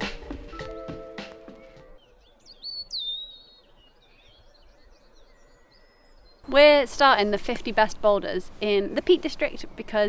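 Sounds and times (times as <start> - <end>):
background music: 0.0 - 2.0
songbird singing whistled notes: 0.3 - 6.5
faint high bird calls: 1.5 - 6.5.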